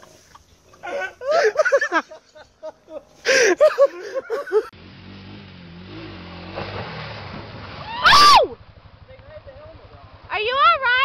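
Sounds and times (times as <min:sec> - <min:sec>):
quad bike engine running: 0:04.4 - 0:11.0.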